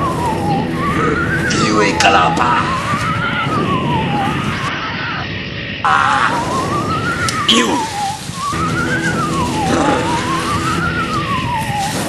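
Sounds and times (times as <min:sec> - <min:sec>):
siren wailing with warble: 0:00.0 - 0:12.0.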